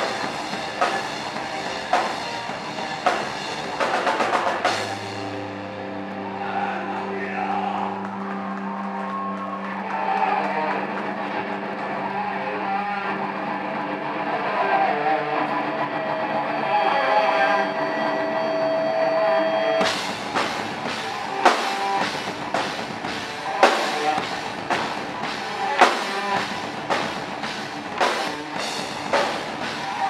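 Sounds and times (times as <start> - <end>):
drums: 0.0 - 30.0
live rock band: 0.0 - 30.0
ringing guitar and bass notes: 0.0 - 30.0.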